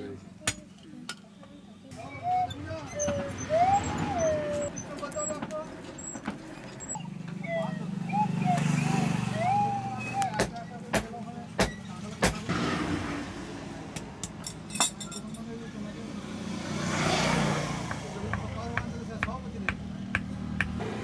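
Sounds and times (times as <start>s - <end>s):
hammer knocking wooden handle: 17.8s - 20.8s.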